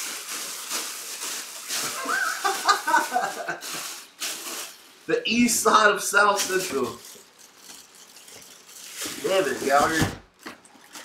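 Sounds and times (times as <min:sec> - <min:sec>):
man laughing in short chuckles: 0:02.0 - 0:04.0.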